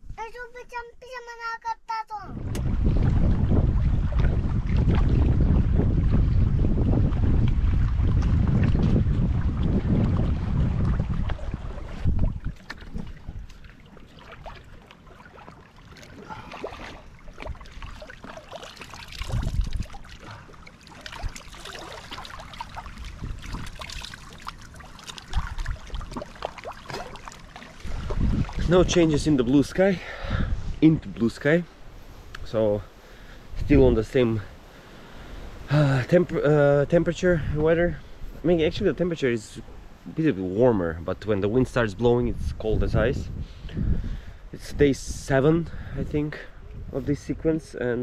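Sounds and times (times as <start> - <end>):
wind buffeting microphone: 2.2 - 14.8, 16.1 - 48.0
water lapping among rocks: 2.6 - 29.6
hands splashing in water: 10.0 - 28.7.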